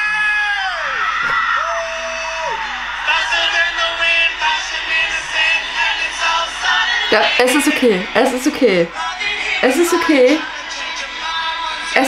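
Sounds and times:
person screaming and yelling: 0.0s - 3.2s
concert crowd noise from phone: 0.0s - 12.0s.

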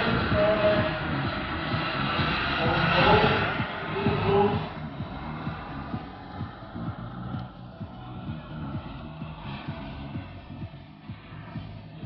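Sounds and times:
model jet rushing overhead: 0.0s - 6.3s.

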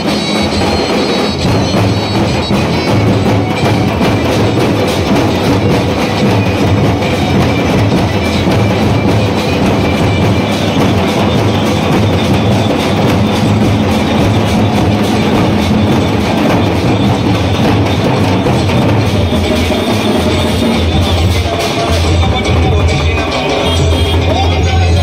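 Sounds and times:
drums struck with sticks: 0.0s - 25.0s.

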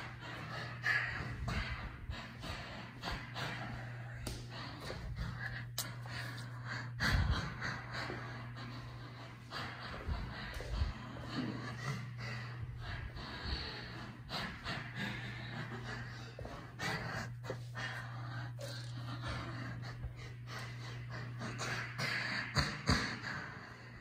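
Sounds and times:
person breathing close: 0.0s - 24.0s
steady low hum: 0.0s - 24.0s.

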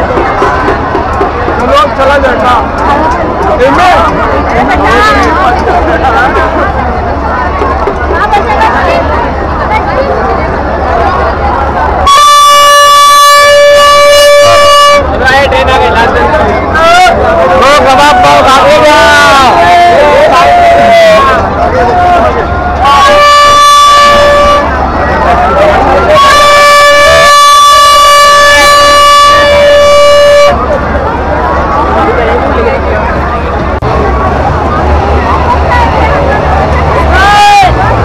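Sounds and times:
crowd chatter: 0.0s - 38.0s
loud horn blast: 12.0s - 16.4s, 17.5s - 32.0s.

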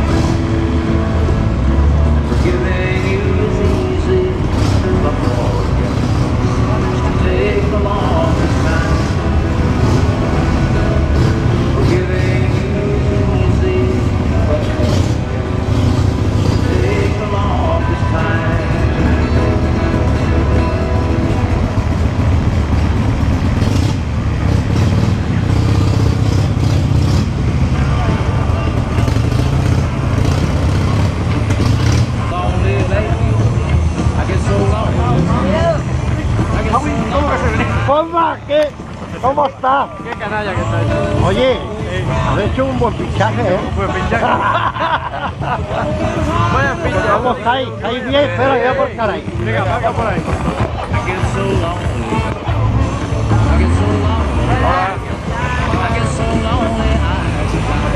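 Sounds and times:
indistinct voices: 0.0s - 57.9s
motorcycle engine running: 0.0s - 57.9s.

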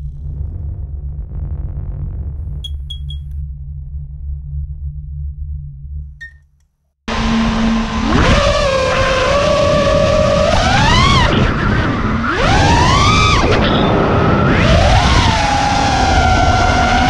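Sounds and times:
low rumbling sound effect: 0.0s - 6.4s
short high chirps: 2.6s - 3.3s
brushless motors whining: 7.1s - 17.0s.

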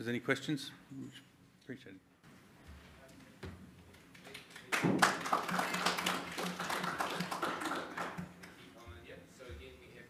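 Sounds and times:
crowd clapping: 4.1s - 8.7s.

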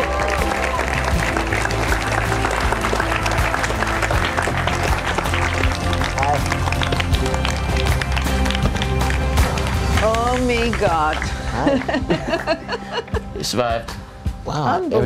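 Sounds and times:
audience applauding: 0.0s - 13.2s
background music with bass line: 0.0s - 15.0s.

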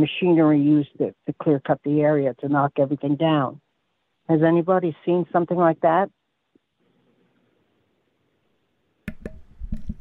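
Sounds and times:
sharp clicks and knocks: 9.0s - 10.0s.

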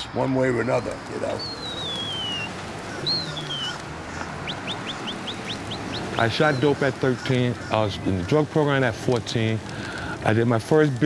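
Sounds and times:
short rising bird chirps: 0.9s - 3.8s, 4.4s - 6.6s
bird whistles falling in pitch: 1.3s - 3.8s.

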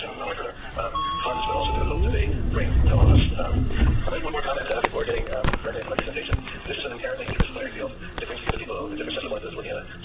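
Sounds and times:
background voices: 0.0s - 10.0s
electronic two-tone chime: 1.0s - 2.2s
low rumble: 1.0s - 4.6s.

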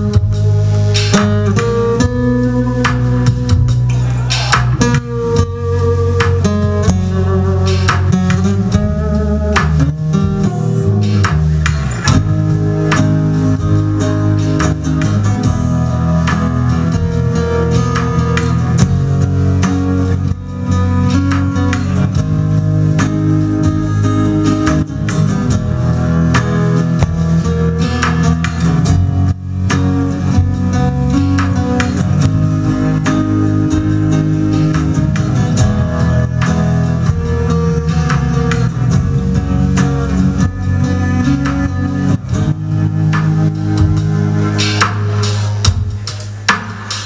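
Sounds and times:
acoustic guitar strumming chords: 0.0s - 47.0s.

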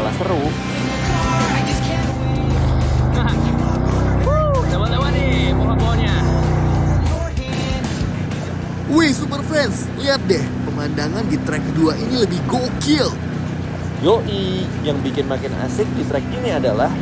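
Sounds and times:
background music with beat: 0.0s - 9.9s
quad bike engine running: 0.0s - 17.0s
rider whooping: 4.0s - 4.9s.

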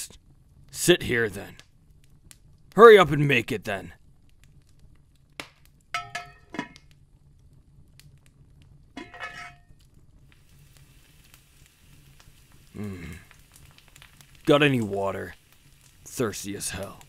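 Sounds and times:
cookware clinking: 6.0s - 6.8s, 9.0s - 9.7s
meat sizzling: 8.9s - 17.0s.

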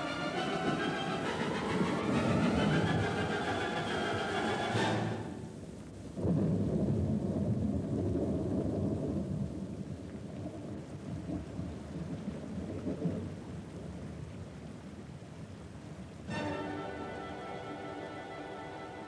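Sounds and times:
thunder rumble: 0.0s - 14.3s.

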